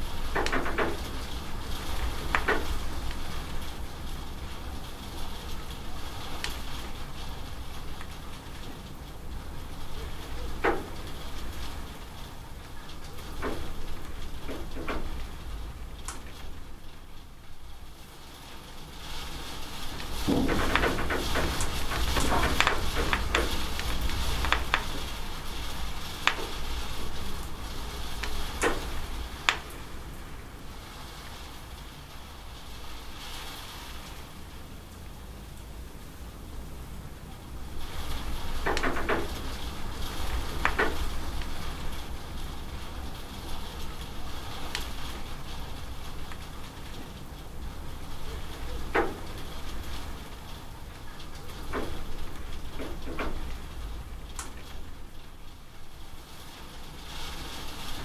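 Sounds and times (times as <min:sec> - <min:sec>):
steady rain: 0:00.0 - 0:58.0
water dripping off roof edge: 0:00.0 - 0:58.0.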